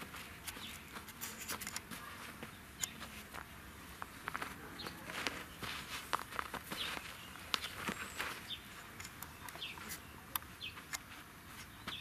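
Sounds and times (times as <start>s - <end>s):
animals scuffling on dry grass: 0.0s - 12.0s.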